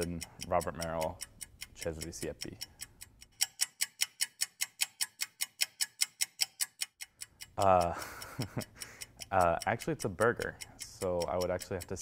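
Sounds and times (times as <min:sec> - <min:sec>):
rapid sharp ticking: 0:00.0 - 0:12.0.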